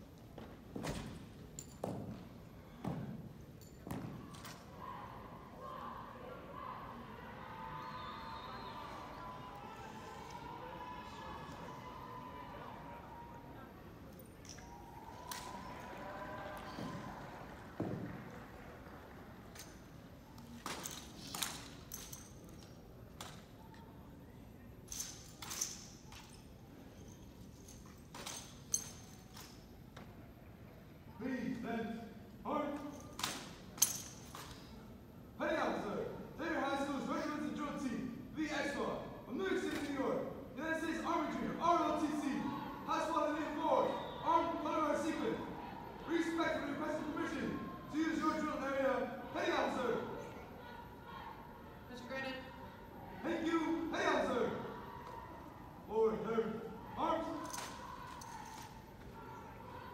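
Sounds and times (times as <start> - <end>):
rifles being handled: 3.5 - 4.7, 19.5 - 23.8, 24.9 - 30.1, 32.7 - 34.8, 57.2 - 59.1.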